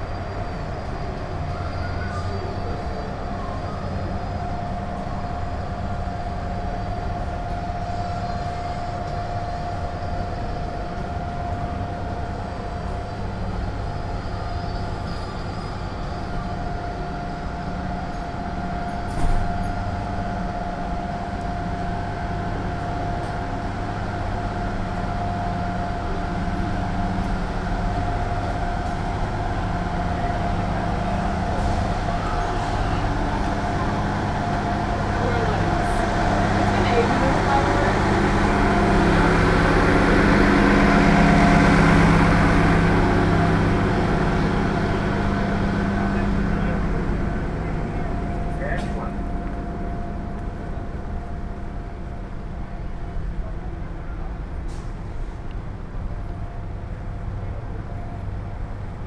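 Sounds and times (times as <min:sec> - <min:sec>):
bus engine humming: 0:00.0 - 0:59.0
constant whine: 0:00.0 - 0:59.0.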